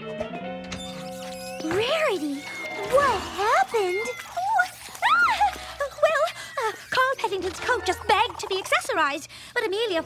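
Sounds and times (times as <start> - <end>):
woman whimpering: 2.8 - 7.2.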